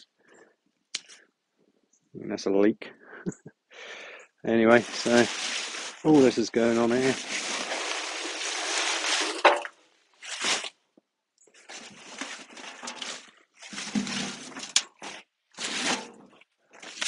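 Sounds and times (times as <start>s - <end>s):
scooping soil from wheelbarrow: 4.7s - 9.6s
plant debris and soil rustling: 4.7s - 10.8s, 11.6s - 17.0s.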